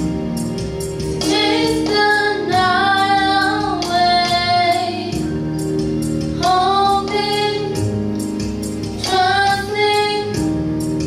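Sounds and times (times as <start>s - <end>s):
musical accompaniment with steady beat: 0.0s - 11.0s
girl singing into a microphone: 1.2s - 5.2s.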